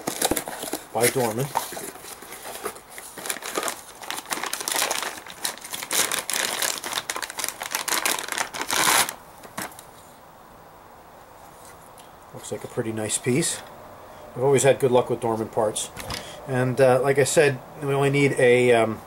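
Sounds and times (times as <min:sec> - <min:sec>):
plastic bag crinkling: 0:00.0 - 0:09.9
faint room hum: 0:00.0 - 0:19.0.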